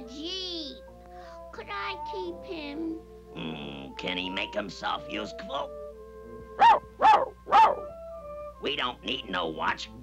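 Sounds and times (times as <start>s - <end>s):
soft held music notes: 0.0s - 7.0s
cartoon voice barking: 6.6s - 7.9s.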